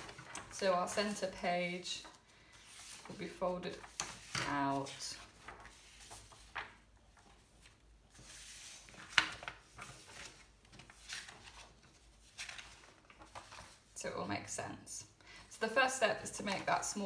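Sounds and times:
paper rustling: 0.0s - 14.0s.

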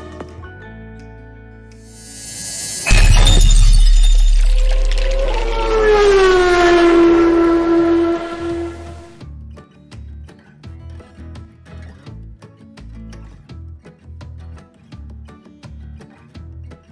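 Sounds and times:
ringing tone sliding down: 1.9s - 9.2s
rising whoosh: 1.9s - 9.2s
booming hit with deep rumble: 2.0s - 9.2s.

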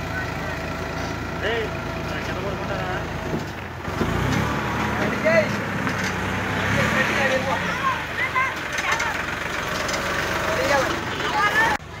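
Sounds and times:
voices talking: 0.0s - 12.0s.

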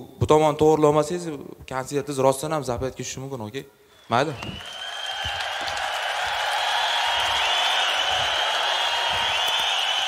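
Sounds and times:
audience laughing and applauding: 4.6s - 10.0s.

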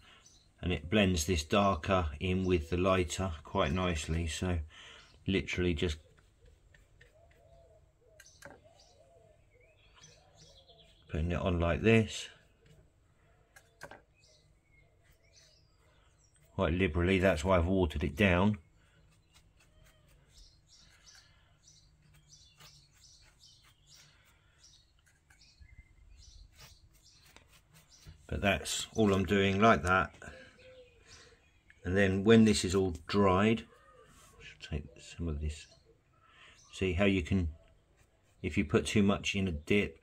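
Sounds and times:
distant bird calls: 2.2s - 40.0s.

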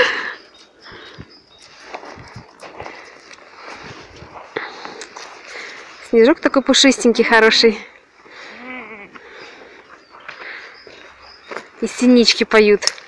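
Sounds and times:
footsteps crunching in snow: 1.5s - 6.2s.

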